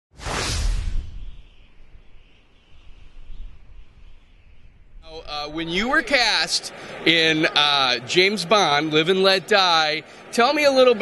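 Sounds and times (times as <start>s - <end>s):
whoosh sound effect: 0.2s - 1.5s
deep rumble: 0.2s - 5.6s.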